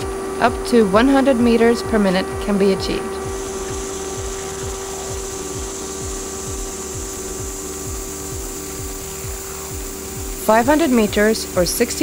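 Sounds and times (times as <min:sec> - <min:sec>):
high even hiss: 0:00.0 - 0:12.0
machine hum: 0:00.0 - 0:12.0
regular low pulsing: 0:00.0 - 0:12.0.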